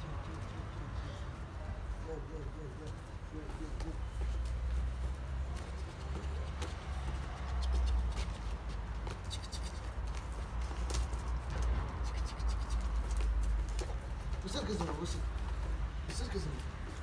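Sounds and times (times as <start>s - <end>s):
dog claws scratching on concrete: 7.3s - 15.0s.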